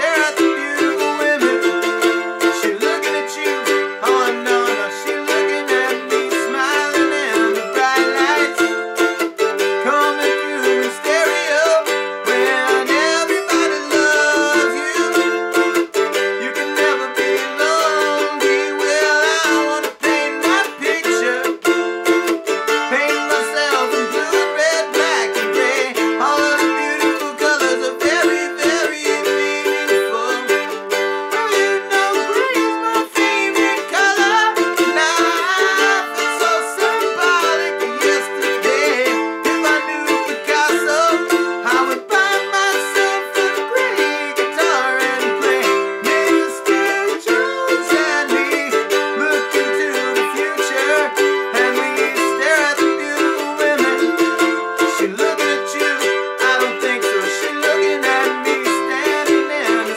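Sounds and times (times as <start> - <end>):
mandolin strummed: 0.0 - 59.9.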